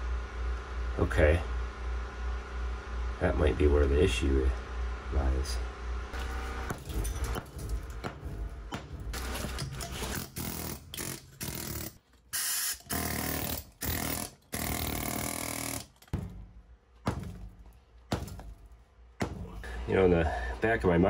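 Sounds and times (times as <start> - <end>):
loose concrete knocks: 6.2 - 10.4, 16.0 - 19.7
pneumatic air hammer on concrete: 8.7 - 16.2.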